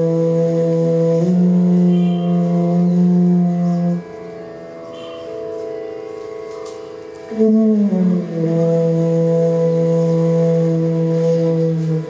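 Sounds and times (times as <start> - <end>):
bamboo flute low note: 0.0 - 4.2, 7.3 - 12.0
soft steady drone: 0.0 - 12.0.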